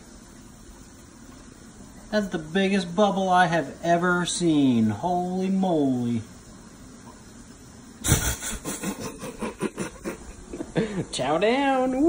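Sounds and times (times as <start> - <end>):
man laughing: 8.0 - 11.2.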